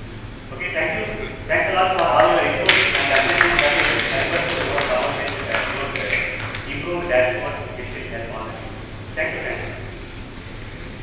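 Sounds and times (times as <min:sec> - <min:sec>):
man speaking into microphone: 0:00.5 - 0:09.9.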